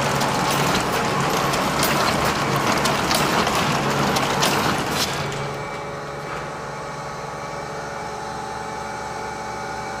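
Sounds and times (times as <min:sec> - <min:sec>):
gear-driven machine humming: 0:00.0 - 0:07.8.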